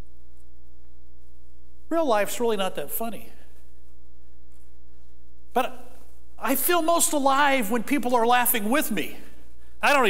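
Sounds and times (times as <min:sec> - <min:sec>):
man's voice: 0:01.9 - 0:03.4, 0:05.6 - 0:10.0.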